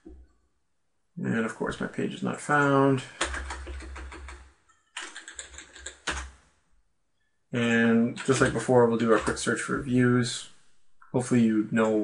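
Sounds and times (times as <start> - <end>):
computer keyboard typing: 2.5 - 6.4, 8.1 - 9.9.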